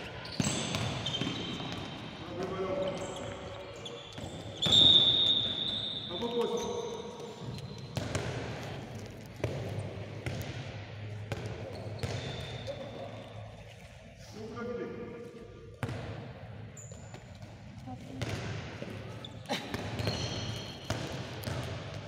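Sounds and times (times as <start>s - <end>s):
handball bouncing on floor: 7.2s - 12.5s, 17.1s - 19.0s, 19.6s - 22.0s.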